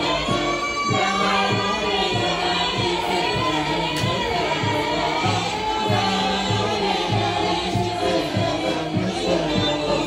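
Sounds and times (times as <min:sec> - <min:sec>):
folk instruments: 0:00.0 - 0:10.0
women singing together: 0:00.0 - 0:10.0.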